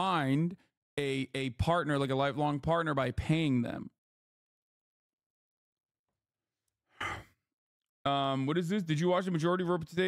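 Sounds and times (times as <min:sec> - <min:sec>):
man sighing: 0:07.0 - 0:07.3.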